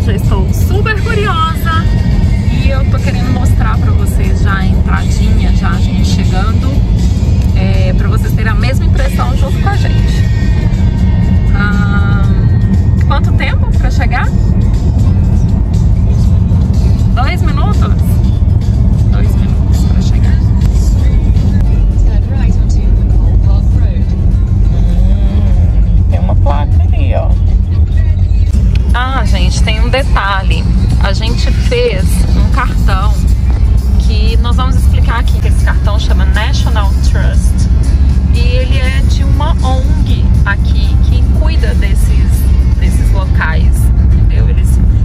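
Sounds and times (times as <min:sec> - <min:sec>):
background music: 0:00.0 - 0:45.0
car driving rumble: 0:00.0 - 0:45.0
person speaking: 0:24.7 - 0:27.4.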